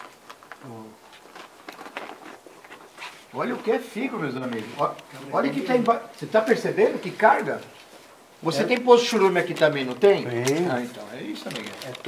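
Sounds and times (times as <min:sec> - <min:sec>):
handling rustle: 0:00.0 - 0:12.0.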